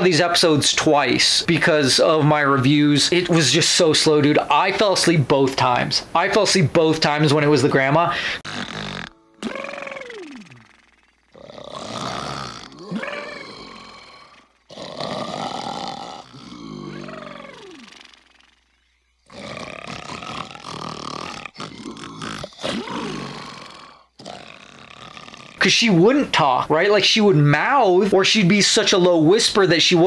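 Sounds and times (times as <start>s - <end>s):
cartoon creature snoring: 8.4s - 25.7s.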